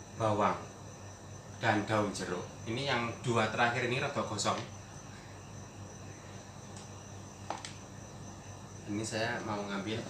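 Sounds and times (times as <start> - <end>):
faint high-pitched whine: 0.0 - 10.0
steady low hum: 0.0 - 10.0.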